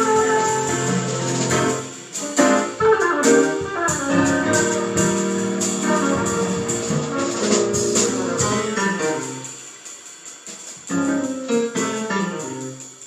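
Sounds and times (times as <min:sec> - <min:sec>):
small live band playing: 0:00.0 - 0:09.9, 0:10.6 - 0:13.0.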